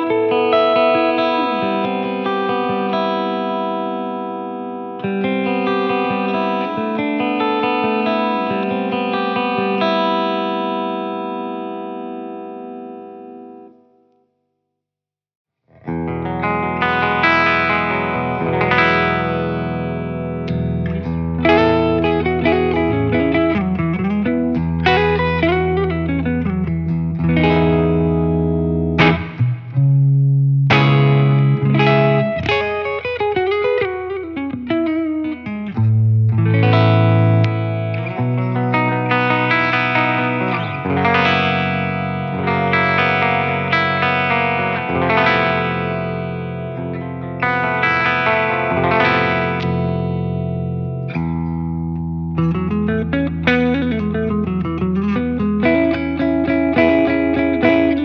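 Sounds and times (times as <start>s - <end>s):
clean electric guitar phrase: 0.0s - 13.8s, 15.8s - 58.0s
ringing guitar chord: 0.0s - 14.2s, 15.8s - 58.0s.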